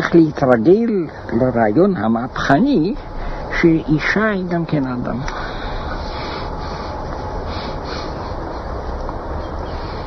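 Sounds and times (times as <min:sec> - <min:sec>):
man speaking: 0:00.0 - 0:05.3
background hiss: 0:00.0 - 0:10.0
low hum: 0:00.0 - 0:10.0.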